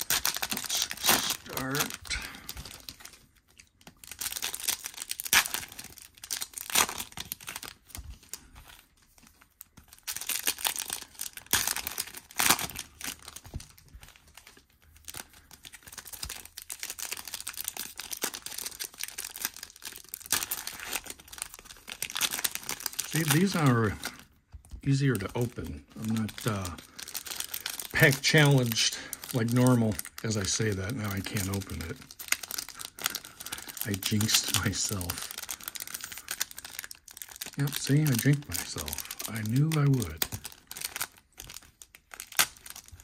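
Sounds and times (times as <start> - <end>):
foil wrapper tearing and crinkling: 0.0 - 43.0.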